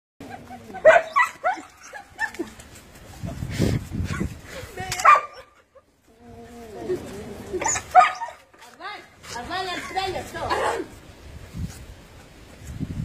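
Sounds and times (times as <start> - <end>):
dog barking and yipping: 0.2 - 2.6, 5.0 - 5.8, 7.6 - 8.6.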